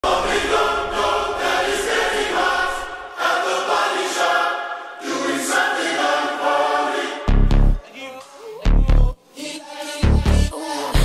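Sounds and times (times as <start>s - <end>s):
choir singing: 0.0s - 8.6s.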